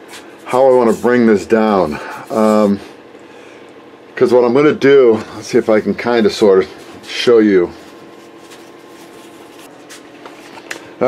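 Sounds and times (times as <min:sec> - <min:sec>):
low room hum: 0:00.0 - 0:11.0
hands rustling fabric: 0:07.8 - 0:10.6.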